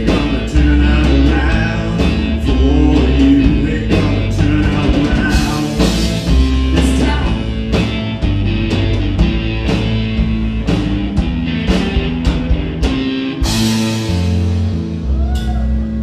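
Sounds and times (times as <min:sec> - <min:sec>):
drum kit beat: 0:00.0 - 0:15.9
electric guitars: 0:00.0 - 0:16.0.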